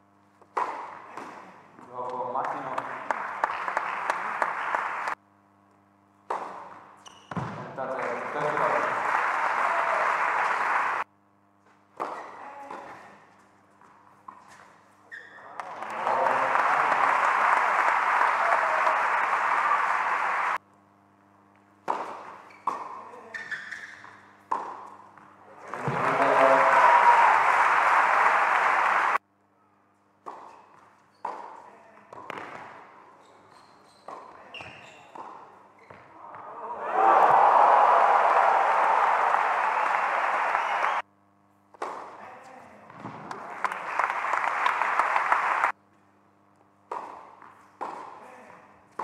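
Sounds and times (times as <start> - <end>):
racket hitting ball: 0.5 - 1.5, 6.3 - 7.6, 12.0 - 13.0, 21.8 - 23.0, 24.5 - 25.0, 31.2 - 32.8, 46.9 - 48.2
crowd applauding and cheering: 2.6 - 5.2, 7.8 - 11.1, 15.5 - 20.6, 25.6 - 29.2, 36.5 - 41.0, 43.4 - 45.8
tennis ball struck with racket: 6.3 - 7.6, 21.8 - 23.0, 46.9 - 48.2.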